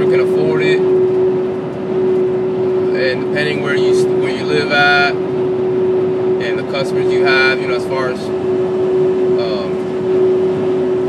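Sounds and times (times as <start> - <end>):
constant mid-pitched hum: 0.0 - 11.0
road and engine noise in van: 0.0 - 11.0.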